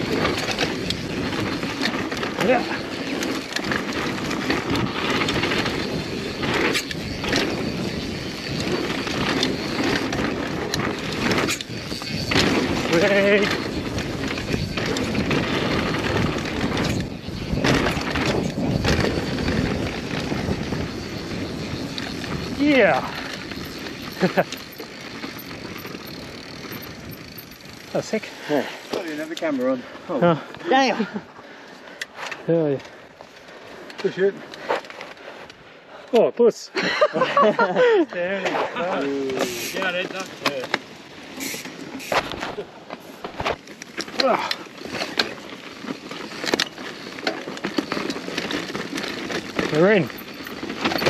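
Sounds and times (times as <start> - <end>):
bike tyre and drivetrain noise: 0.0 - 51.0
knocks and rattles over bumps: 42.2 - 51.0.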